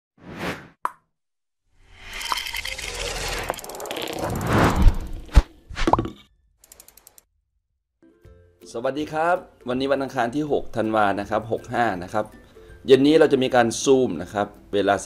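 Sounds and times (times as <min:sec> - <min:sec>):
short swish: 0:00.2 - 0:00.8, 0:04.2 - 0:05.9
long rising whoosh: 0:01.9 - 0:05.6.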